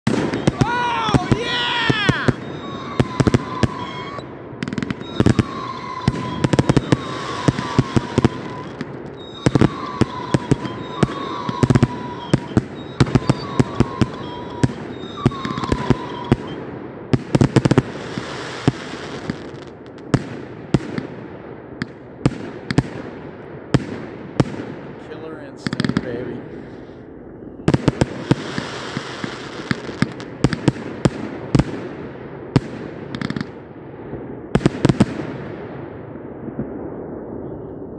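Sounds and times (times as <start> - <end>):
fireworks shots and bursts: 0.0 - 37.9.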